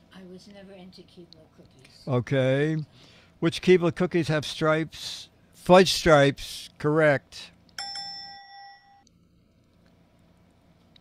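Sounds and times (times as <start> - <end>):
bright bell ding: 7.8 - 9.0.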